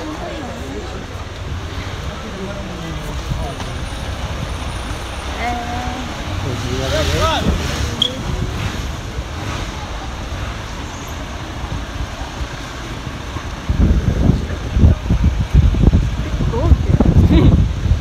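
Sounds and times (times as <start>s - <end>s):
traffic rumble: 0.0s - 18.0s
wind buffeting microphone: 7.0s - 18.0s.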